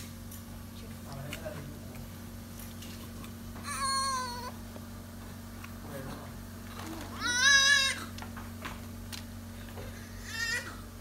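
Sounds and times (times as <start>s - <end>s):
newborn baby crying: 3.7s - 4.6s, 7.2s - 8.1s.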